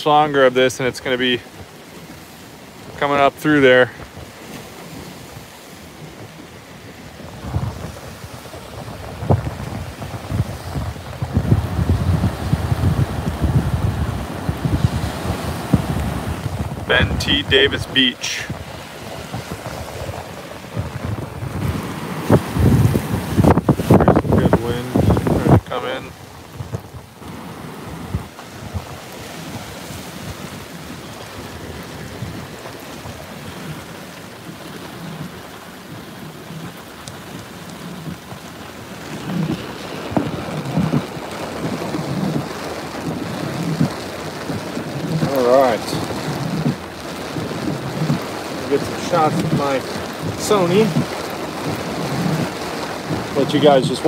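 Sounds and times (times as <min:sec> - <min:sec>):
rain: 0:00.0 - 0:54.0
wind gusting against microphone: 0:00.0 - 0:54.0.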